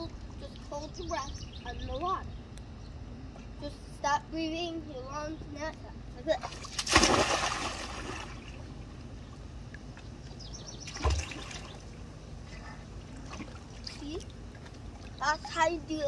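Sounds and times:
splash into swimming pool: 6.4 - 8.5, 10.9 - 11.8
water lapping: 6.4 - 15.6.

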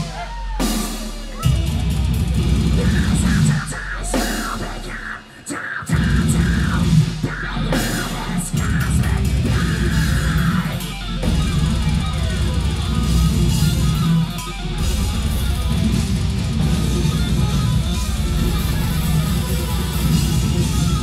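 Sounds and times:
heavy kick drums: 0.0 - 4.8, 5.9 - 21.0
distorted electric guitars: 0.0 - 21.0.

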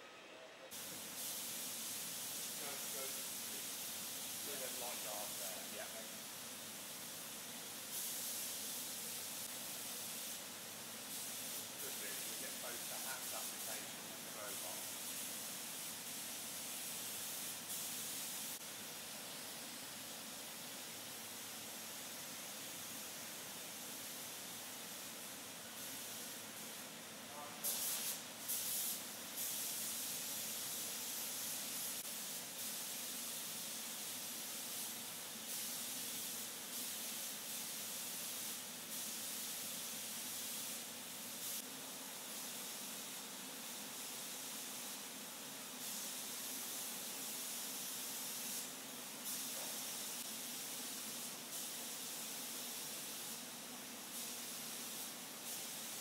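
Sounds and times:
spray guns hissing: 0.7 - 56.0.

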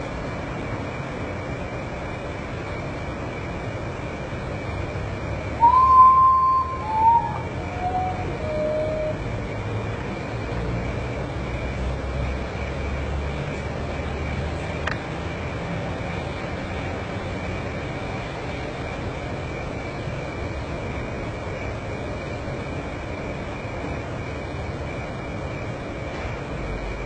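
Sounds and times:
low background rumble: 0.0 - 11.6
bird whistled mournful song: 5.5 - 9.3.

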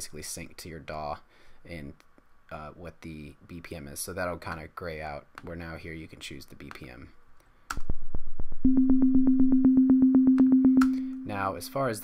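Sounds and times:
fast plucked synth clicks: 8.6 - 11.8
steady pulsing synth tone: 8.6 - 11.8.

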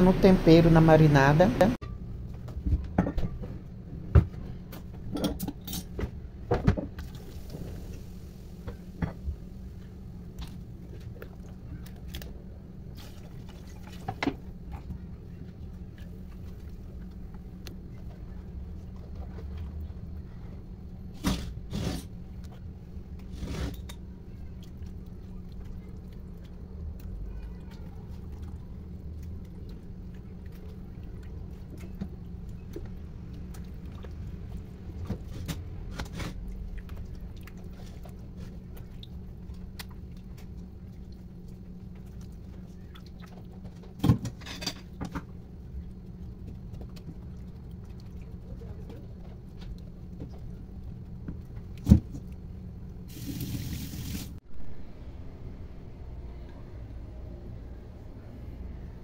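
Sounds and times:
low hum: 54.4 - 59.0.

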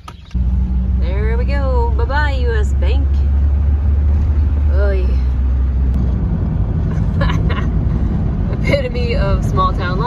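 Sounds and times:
car interior road and engine rumble: 0.0 - 10.0.

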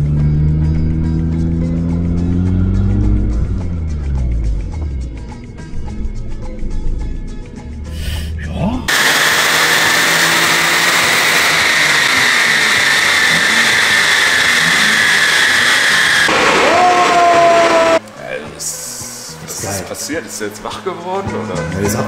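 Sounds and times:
supercharger whine: 0.0 - 7.9, 8.8 - 18.0
engine roaring under load: 0.0 - 18.0.

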